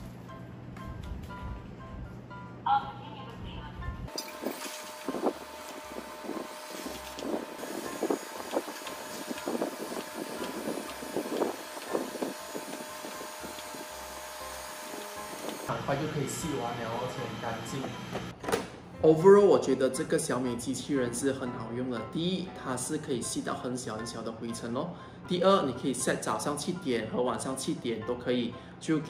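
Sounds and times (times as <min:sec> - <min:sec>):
background music: 0:00.0 - 0:29.0
robot vacuum motor whine: 0:04.1 - 0:18.3.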